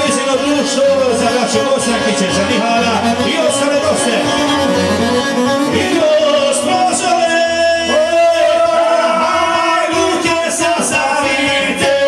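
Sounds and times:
repeating keyboard bass note: 0.0s - 8.9s
electric keyboard: 0.0s - 12.0s
violin: 0.0s - 12.0s.

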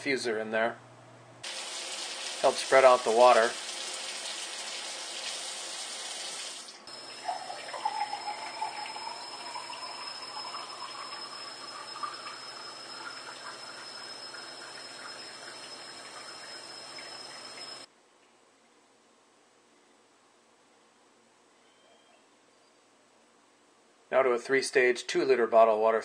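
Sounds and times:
water pouring into a glass: 1.4s - 5.6s, 6.3s - 17.9s.

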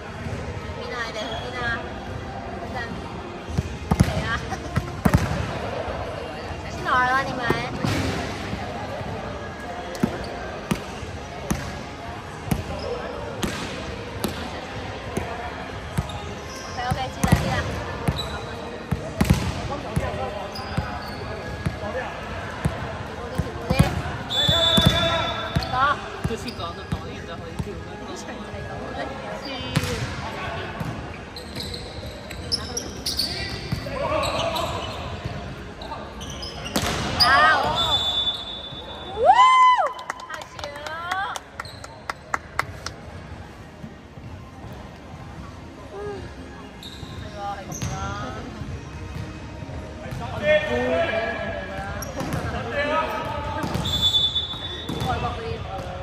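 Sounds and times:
sneakers squeaking on floor: 1.1s - 1.7s, 12.5s - 13.6s, 15.9s - 21.8s, 23.3s - 27.7s, 30.8s - 39.1s, 41.6s - 42.2s, 46.7s - 49.5s, 51.8s - 52.6s, 53.5s - 55.9s
volleyball hits and bounces: 3.6s - 5.5s, 13.4s - 14.5s, 16.9s - 18.2s, 18.9s - 20.1s, 36.7s - 37.3s.

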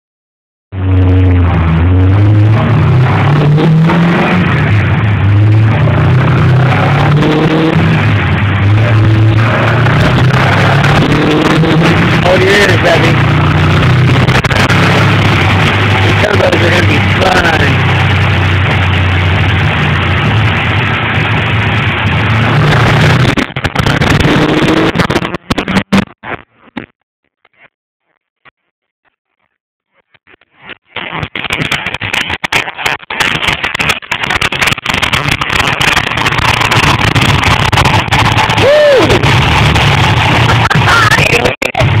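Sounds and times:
car engine on dynamometer: 0.7s - 26.1s, 31.7s - 42.0s.

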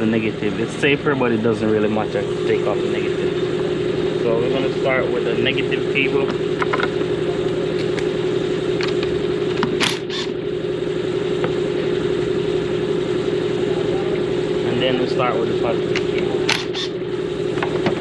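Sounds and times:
air compressor humming: 0.0s - 18.0s.

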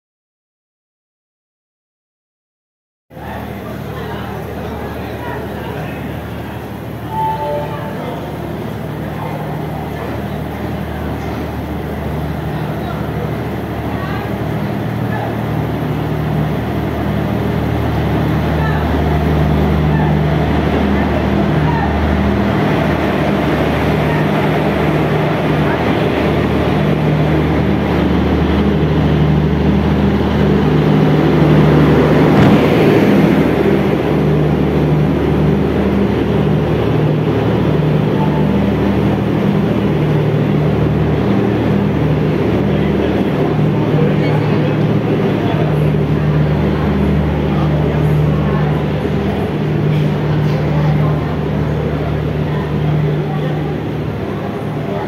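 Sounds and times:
electric locomotive humming: 3.1s - 55.0s
train coaches rolling by: 3.1s - 55.0s.

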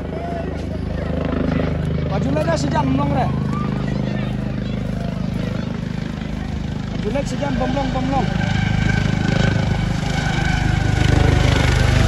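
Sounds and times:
helicopter rotor chopping: 0.0s - 12.0s.

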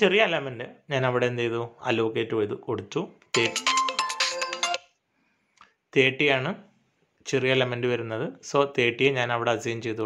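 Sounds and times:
phone alarm ringtone: 3.4s - 5.0s.

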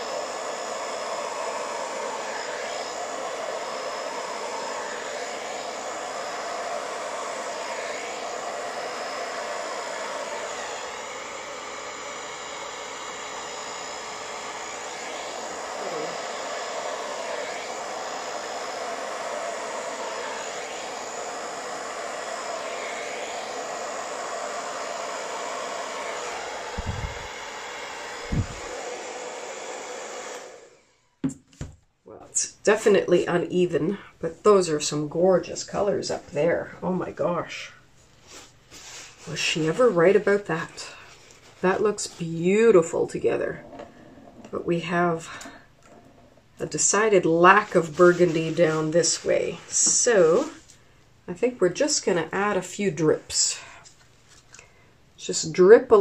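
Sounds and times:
hair dryer blowing: 0.0s - 31.8s, 32.4s - 56.0s.

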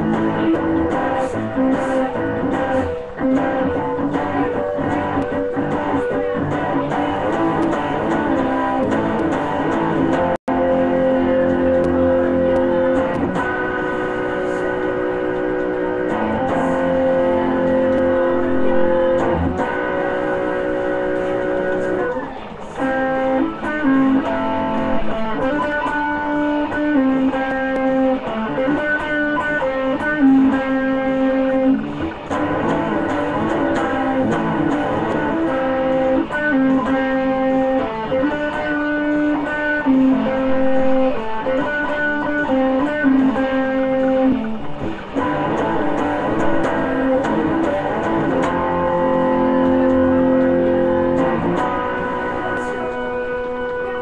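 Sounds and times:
electric guitar playing rock melody: 0.0s - 54.0s.

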